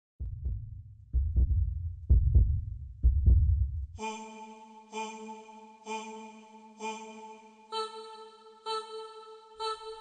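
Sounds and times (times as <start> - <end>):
heartbeat-like low thumps: 0.2 - 4.0.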